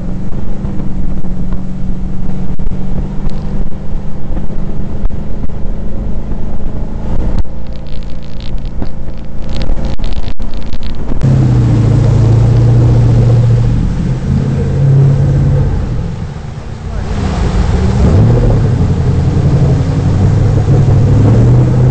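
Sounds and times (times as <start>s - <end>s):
boat engine drone: 0.0s - 21.9s
water jet rushing and spray: 0.0s - 21.9s.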